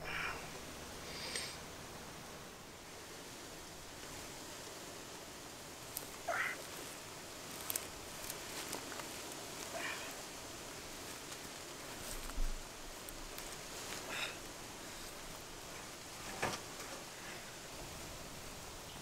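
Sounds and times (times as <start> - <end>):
steady hiss: 0.0 - 19.0
rising animal calls: 6.2 - 6.8.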